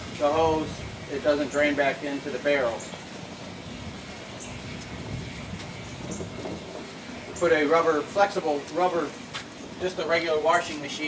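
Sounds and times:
distant train rumble: 0:00.0 - 0:11.0.

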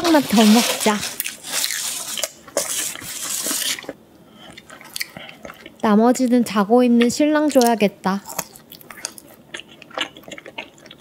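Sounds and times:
pizza crust and paper crackling: 0:00.0 - 0:04.0.

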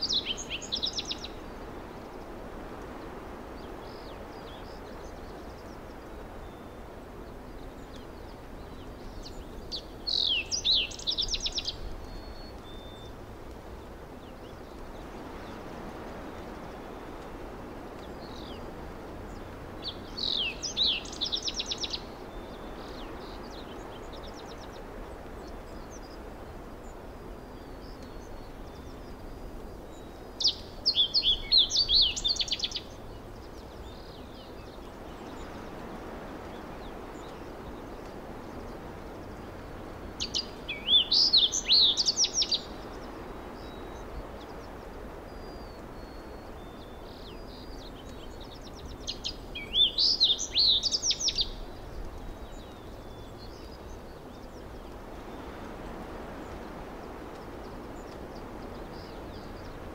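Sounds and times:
bird chirping: 0:08.7 - 0:13.2, 0:40.2 - 0:54.6.

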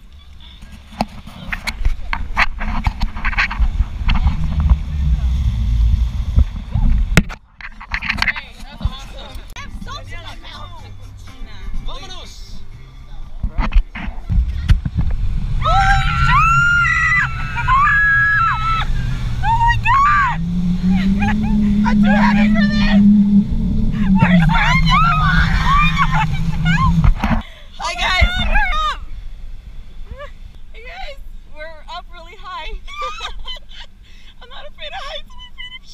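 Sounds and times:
low sustained accompaniment: 0:09.4 - 0:27.9.

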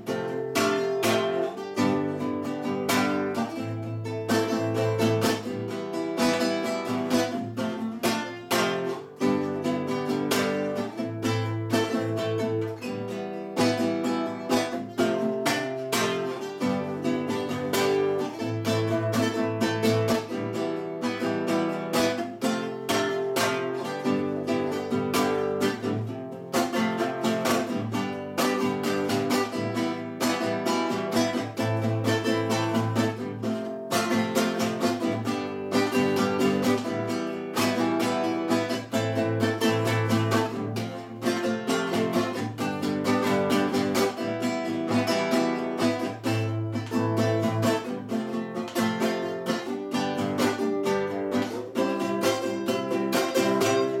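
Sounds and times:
classical guitar strummed: 0:00.0 - 0:54.0.

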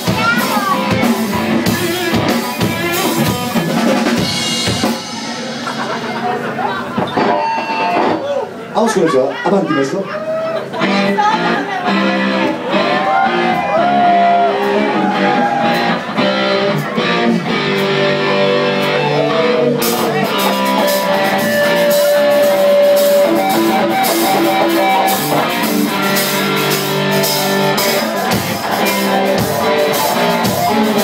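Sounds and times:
electric guitar bending notes: 0:00.0 - 0:08.7, 0:10.2 - 0:31.0
live rock band playing: 0:00.0 - 0:31.0.

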